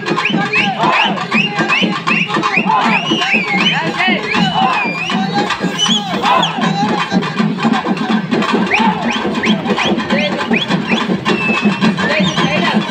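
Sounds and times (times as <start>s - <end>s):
drums playing quick beat: 0.0s - 12.9s
large crowd noise: 0.0s - 12.9s.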